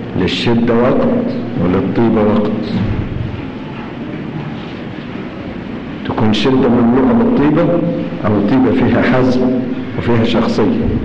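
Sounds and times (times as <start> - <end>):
old recording hiss and rumble: 0.0 - 11.0.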